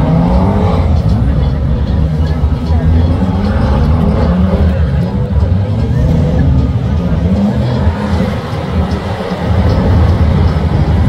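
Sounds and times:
racing car engines: 0:00.0 - 0:11.0.

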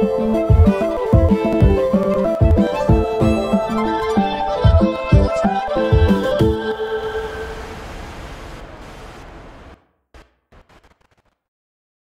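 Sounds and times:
rumbling wash of noise: 0:06.0 - 0:10.7.

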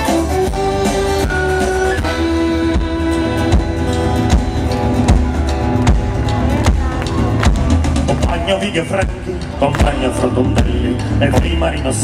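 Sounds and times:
live folk-rock band playing: 0:00.0 - 0:12.0.

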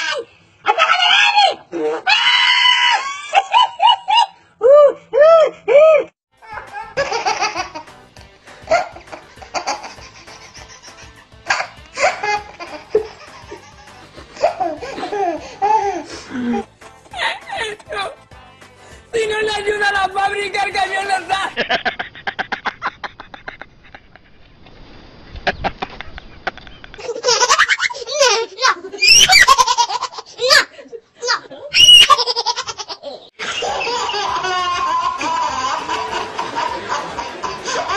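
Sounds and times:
baby laughing: 0:06.4 - 0:07.9, 0:08.7 - 0:17.8, 0:26.9 - 0:30.7, 0:31.8 - 0:37.9.

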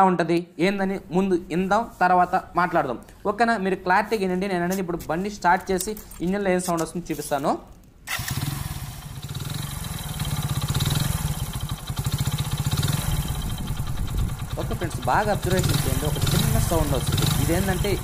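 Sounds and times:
motorcycle engine idling: 0:08.1 - 0:18.0.

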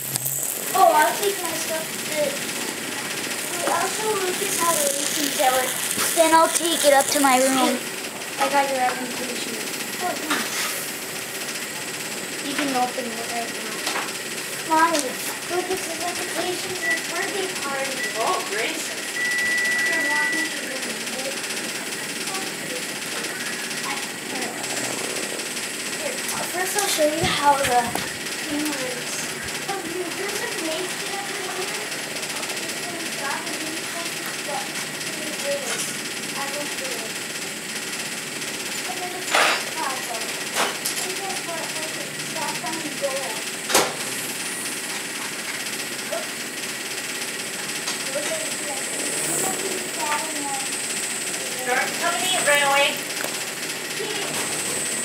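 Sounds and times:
steady hiss: 0:00.0 - 0:08.4
faint voices: 0:00.0 - 0:11.2
scattered voices: 0:00.0 - 0:55.0
electronic beep pips and tone: 0:19.2 - 0:20.6.

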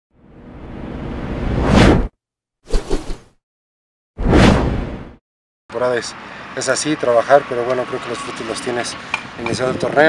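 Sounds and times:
whoosh sound effect: 0:01.4 - 0:02.1, 0:04.2 - 0:05.2.

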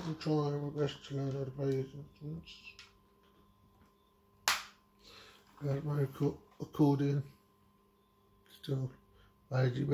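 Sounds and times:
faint room hum: 0:00.0 - 0:09.9.

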